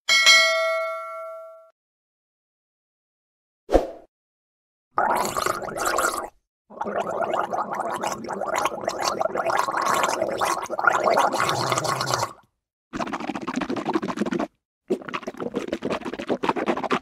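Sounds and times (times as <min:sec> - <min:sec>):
mouthwash rinsing in mouth: 0:05.0 - 0:12.4, 0:13.0 - 0:17.0
person gargling mouthwash: 0:05.0 - 0:17.0.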